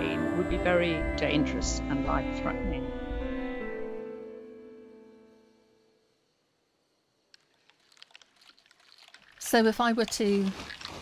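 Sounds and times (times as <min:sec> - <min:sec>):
mouth and lip clicks: 0:07.3 - 0:11.0.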